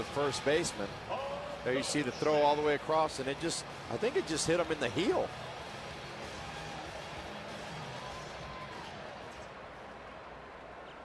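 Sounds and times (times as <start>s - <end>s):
faint music: 0.0s - 11.0s
stadium crowd noise: 0.0s - 11.0s.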